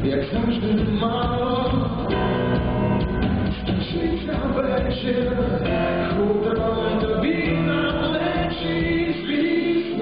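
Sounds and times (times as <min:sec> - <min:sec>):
keyboard: 0:00.0 - 0:10.0.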